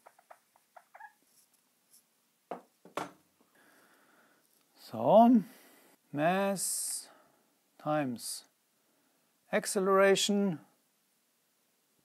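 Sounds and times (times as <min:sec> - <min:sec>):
whiteboard eraser squeaking: 0:00.0 - 0:01.5.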